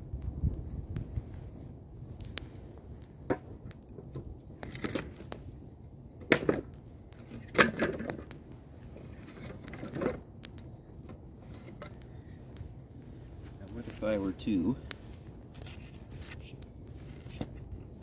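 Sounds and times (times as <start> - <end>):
campfire crackling and popping: 0.0 - 18.0.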